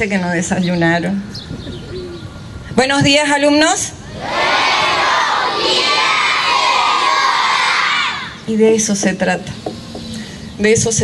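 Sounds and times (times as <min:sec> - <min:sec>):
children shouting in unison: 0:04.1 - 0:08.4.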